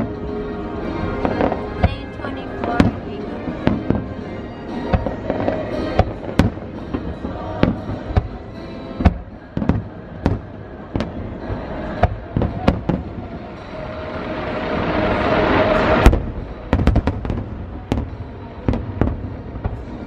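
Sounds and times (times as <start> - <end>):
faint music: 0.0 - 20.0
faint voices: 0.0 - 20.0
fireworks bangs: 1.0 - 20.0.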